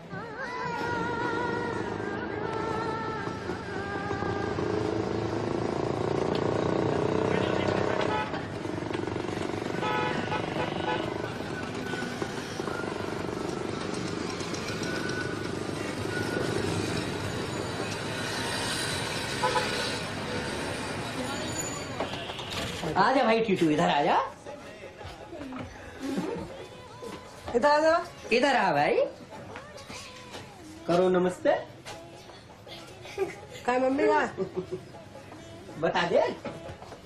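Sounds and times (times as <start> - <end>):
traffic running past: 0.0 - 37.0.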